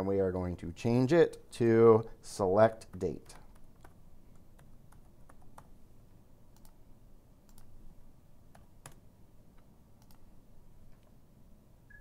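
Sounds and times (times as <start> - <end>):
computer keyboard typing: 2.9 - 5.8, 6.5 - 6.8, 7.5 - 7.7, 8.5 - 9.0, 10.0 - 10.2.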